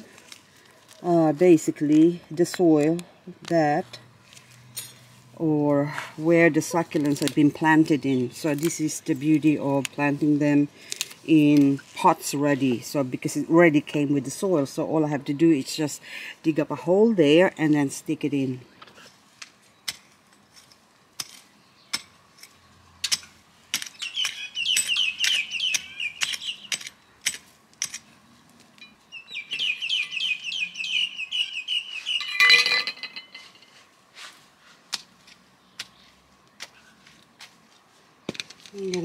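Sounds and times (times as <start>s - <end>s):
bird chirping: 23.8s - 27.3s, 28.1s - 33.5s.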